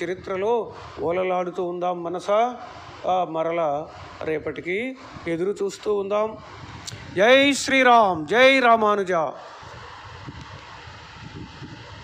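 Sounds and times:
even hiss: 0:00.0 - 0:12.0.

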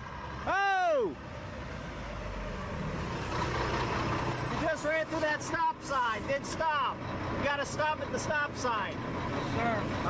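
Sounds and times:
diesel truck driving: 0:00.0 - 0:10.0.

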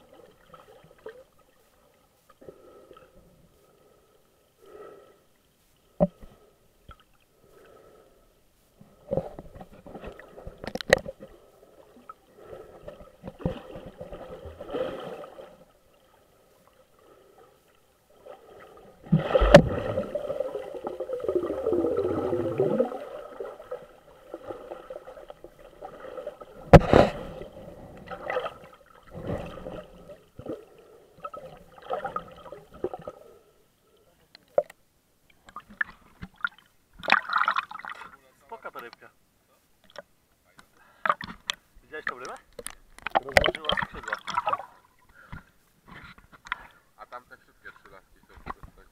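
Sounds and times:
water gurgling underwater: 0:19.0 - 0:30.6.

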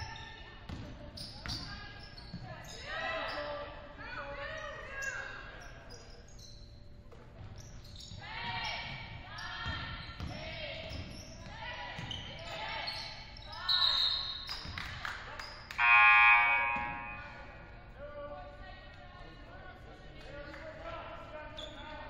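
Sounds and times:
sneakers squeaking: 0:00.0 - 0:03.8, 0:04.4 - 0:17.9, 0:21.4 - 0:22.0
referee's whistle blast: 0:15.8 - 0:17.4
players calling out: 0:15.8 - 0:17.7.

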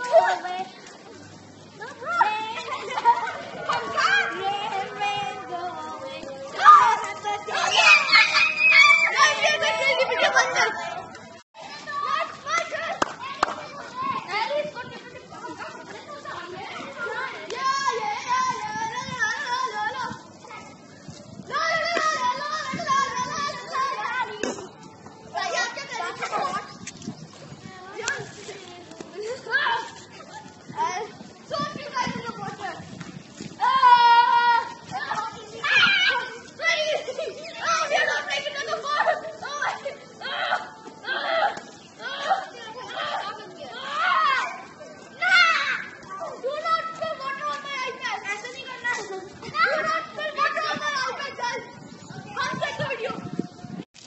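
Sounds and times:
children shouting at play: 0:00.0 - 0:00.9, 0:01.6 - 0:53.8.

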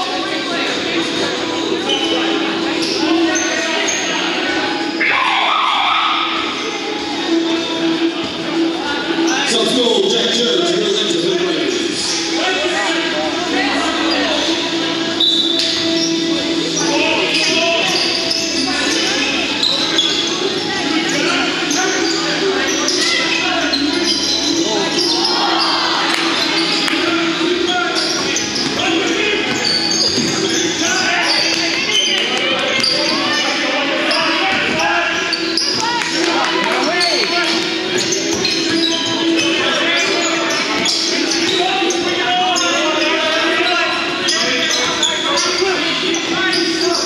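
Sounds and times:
sneakers squeaking: 0:00.0 - 0:47.0
people calling out: 0:01.8 - 0:07.9, 0:12.2 - 0:47.0.

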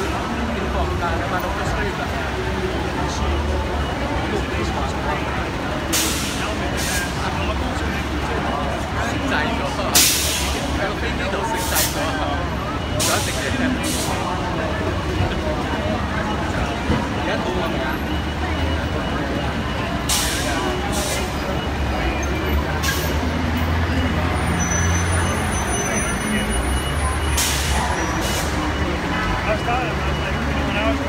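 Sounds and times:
crowd chatter: 0:00.0 - 0:31.0
idling vehicle engines rumbling: 0:00.0 - 0:31.0.

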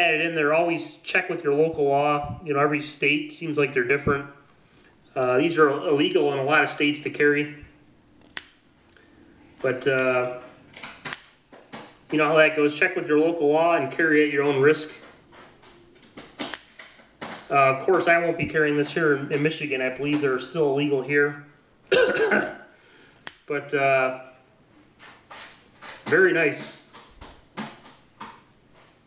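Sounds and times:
knife blade snapping open: 0:23.2 - 0:23.5.

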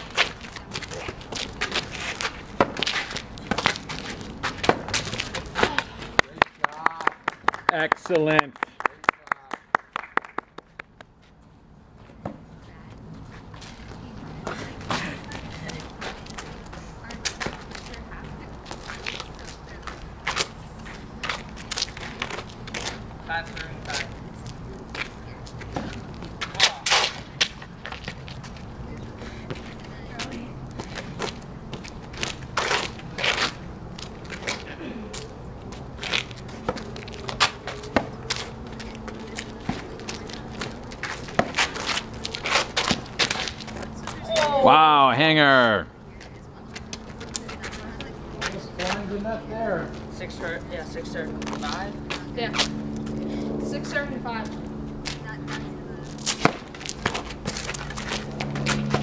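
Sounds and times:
ball bouncing on asphalt: 0:00.1 - 0:08.4, 0:12.0 - 0:12.5, 0:21.2 - 0:28.6, 0:29.5 - 0:44.5, 0:54.4 - 0:59.0.

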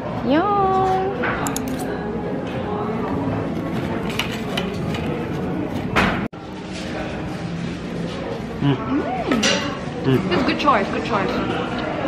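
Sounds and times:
cafe chatter: 0:00.0 - 0:12.0
cutlery scraping on ceramic plate: 0:03.6 - 0:05.5.

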